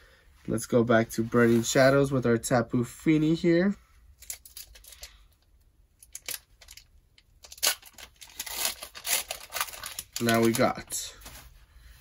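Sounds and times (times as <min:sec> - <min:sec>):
foil wrapper crinkling and tearing: 0:06.0 - 0:11.0.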